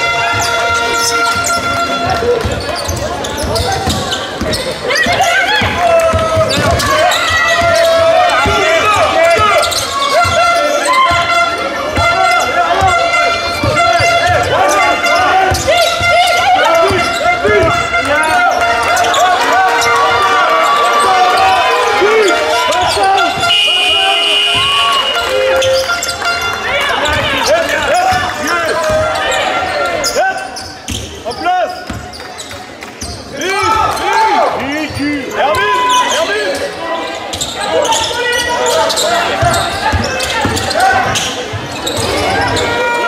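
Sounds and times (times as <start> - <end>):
sneakers squeaking on court: 0.0 - 21.8, 22.5 - 34.0, 34.8 - 43.0
voices calling out: 0.0 - 43.0
basketball bouncing: 0.1 - 14.7, 24.3 - 26.4, 27.0 - 29.2, 31.8 - 32.2, 39.3 - 42.3.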